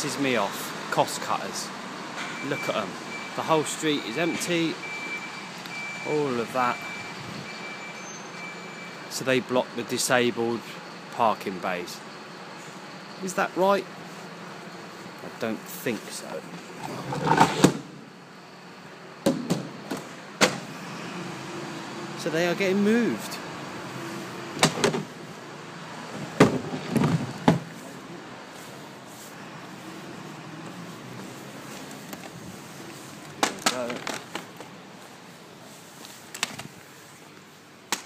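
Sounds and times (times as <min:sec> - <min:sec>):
sharp knocks: 0:19.2 - 0:20.7, 0:24.6 - 0:25.1
sharp plastic knocks: 0:24.6 - 0:25.1.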